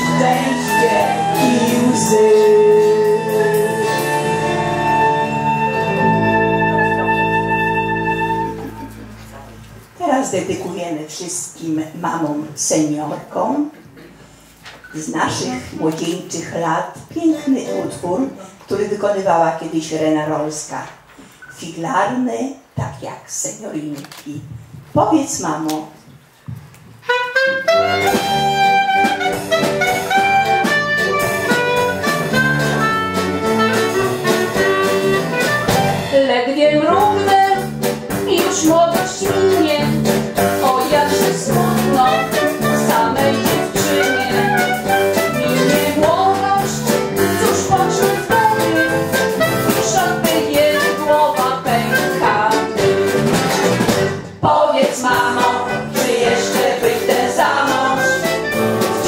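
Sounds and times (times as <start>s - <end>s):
women's vocal group singing: 0.0s - 3.9s, 38.3s - 53.1s, 54.4s - 59.0s
brass accompaniment: 0.0s - 9.6s, 27.0s - 36.2s, 36.8s - 54.2s, 55.0s - 59.0s.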